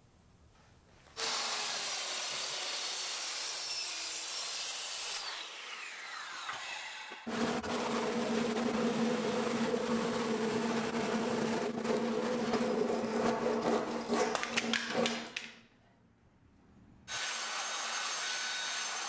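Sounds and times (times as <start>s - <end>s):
circular saw cutting wood: 1.2s - 15.1s, 17.1s - 19.0s.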